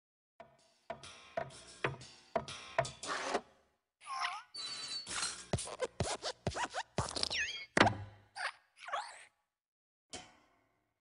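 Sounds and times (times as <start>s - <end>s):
springy cartoon squeaks: 4.2s - 9.3s.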